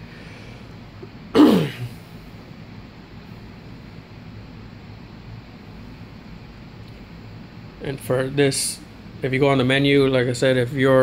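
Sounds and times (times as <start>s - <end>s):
faint steady background hum: 0.0s - 11.0s
man clearing throat: 1.4s - 2.0s.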